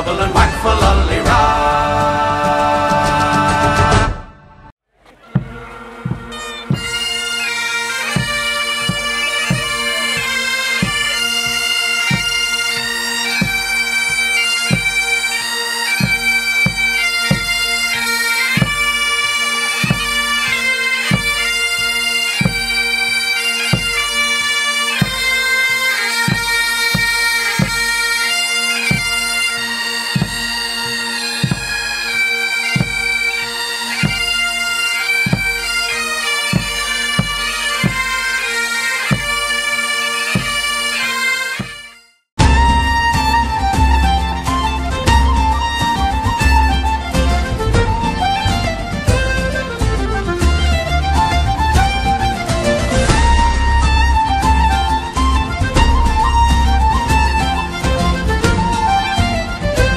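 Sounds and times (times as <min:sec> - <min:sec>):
bagpipes playing: 0:05.1 - 0:59.9
bass drum beating: 0:05.2 - 0:07.0, 0:42.4 - 0:44.4, 0:45.0 - 0:54.7, 0:55.3 - 0:59.9.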